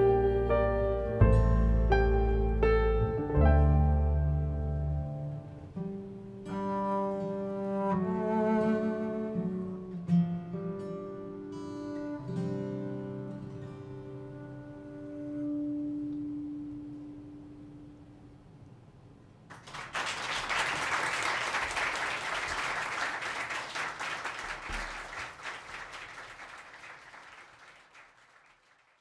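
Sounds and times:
audience applause: 0:19.5 - 0:29.0.

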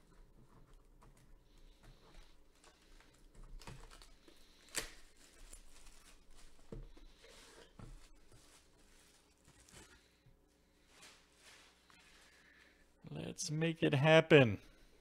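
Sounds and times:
plastic wrap crinkling and tearing: 0:03.5 - 0:06.6.

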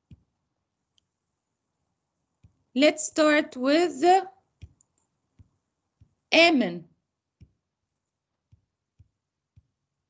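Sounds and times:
computer mouse clicks: 0:00.9 - 0:01.2, 0:04.6 - 0:06.2
person speaking: 0:02.8 - 0:04.4, 0:06.3 - 0:06.8.

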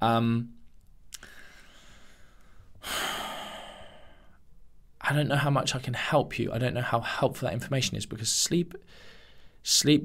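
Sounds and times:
man sighing: 0:02.8 - 0:04.4.

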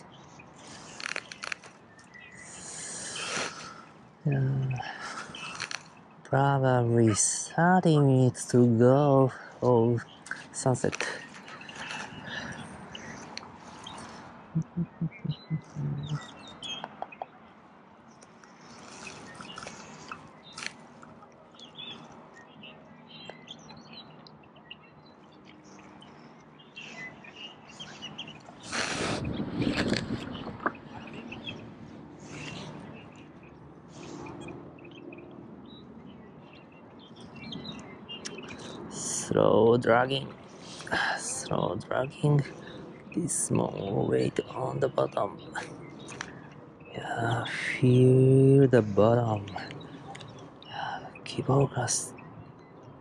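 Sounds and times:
small birds chirping: 0:00.0 - 0:53.0
low evenly spaced pulses: 0:14.5 - 0:16.5.

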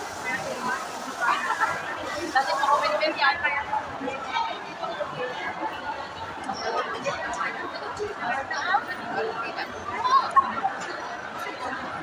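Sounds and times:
background chatter: 0:00.0 - 0:12.0
people talking: 0:00.0 - 0:12.0.

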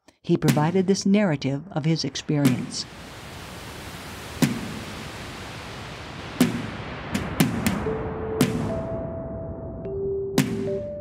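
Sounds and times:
steady hiss: 0:02.0 - 0:08.9
sharp clicks with low thuds: 0:06.4 - 0:08.9.

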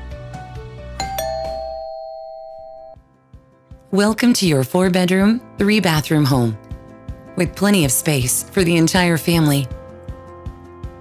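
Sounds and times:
background music: 0:00.0 - 0:11.0
two-note doorbell chime: 0:01.0 - 0:03.0.

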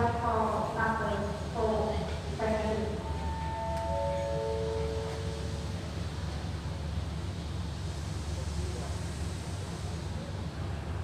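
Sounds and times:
train low rumble: 0:00.0 - 0:11.0
descending chime: 0:03.0 - 0:06.0.

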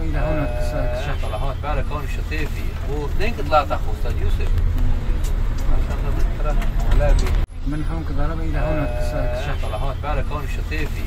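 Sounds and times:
people talking indistinctly: 0:00.0 - 0:11.0
vehicle engine and road rumble: 0:00.0 - 0:11.0.

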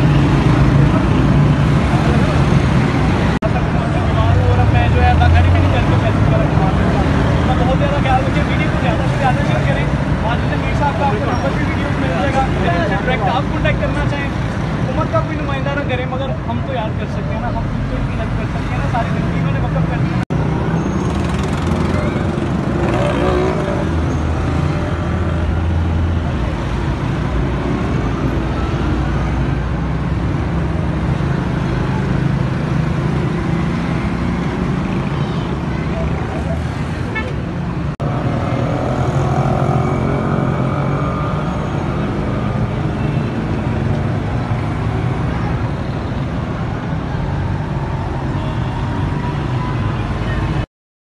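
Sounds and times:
people's voices: 0:00.0 - 0:20.2, 0:31.3 - 0:50.6
traffic engines running: 0:00.0 - 0:50.7.

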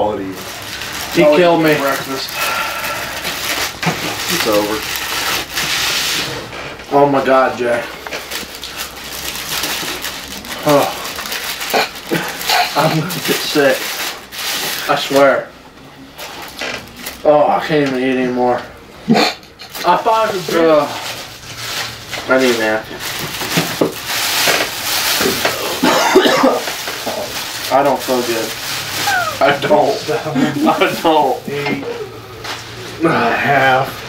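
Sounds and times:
food wrappers rustling: 0:00.0 - 0:15.5, 0:16.2 - 0:18.4, 0:19.5 - 0:34.0.

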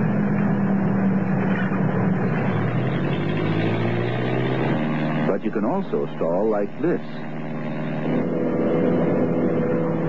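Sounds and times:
light aircraft engine droning: 0:04.8 - 0:10.0.

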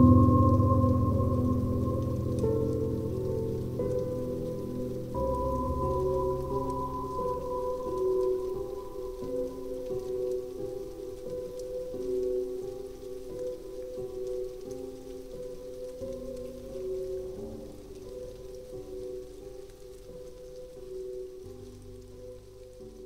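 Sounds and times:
slow sad piano music: 0:00.0 - 0:23.0
soft rain: 0:00.0 - 0:23.0.

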